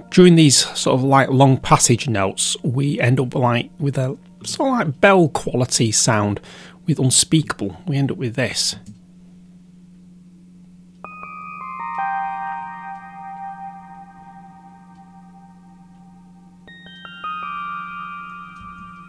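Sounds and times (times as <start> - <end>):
low synth drone: 10.2 - 19.0
bell-like synth notes: 11.0 - 19.0.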